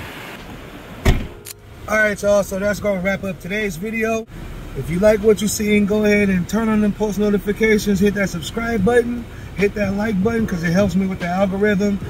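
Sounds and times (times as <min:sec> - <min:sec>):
heavy thump: 0:01.0 - 0:01.4
sharp click: 0:01.1 - 0:01.6
car engine idling: 0:01.1 - 0:12.0.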